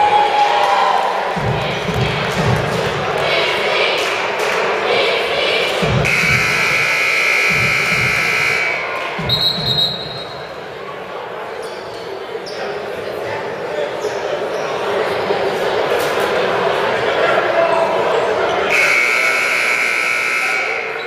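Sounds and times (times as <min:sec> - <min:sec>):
crowd chatter: 0:00.0 - 0:21.0
low echoing thumps: 0:01.4 - 0:03.3, 0:05.8 - 0:08.6, 0:09.2 - 0:10.4
scoreboard horn: 0:06.0 - 0:10.2, 0:18.7 - 0:21.0
referee's whistle: 0:06.1 - 0:10.5, 0:18.7 - 0:21.0.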